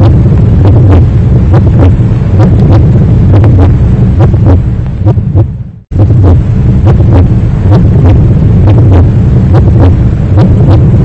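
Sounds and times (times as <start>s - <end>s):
heartbeat thuds: 0.0s - 11.0s
heavy low drone: 0.0s - 11.0s.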